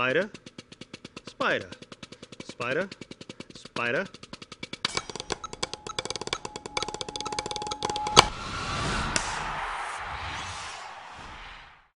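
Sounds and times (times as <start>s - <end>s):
steady tone: 5.0s - 10.0s.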